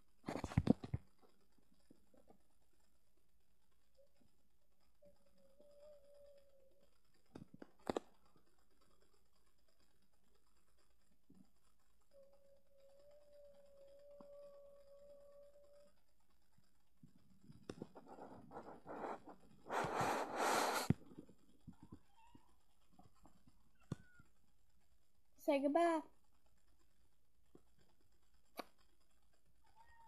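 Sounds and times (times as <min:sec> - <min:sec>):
faint steady high tone: 0:03.8 - 0:07.3, 0:11.4 - 0:16.6
cat hissing: 0:19.7 - 0:20.9.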